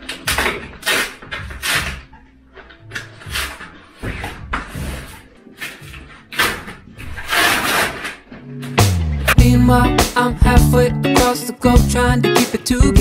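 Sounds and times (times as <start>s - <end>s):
cardboard scraping and rustling: 2.9s - 8.8s
music with bass line: 8.4s - 13.0s.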